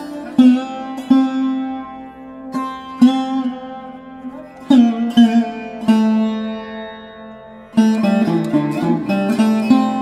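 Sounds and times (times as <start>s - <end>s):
plucked string notes: 0.0s - 10.0s.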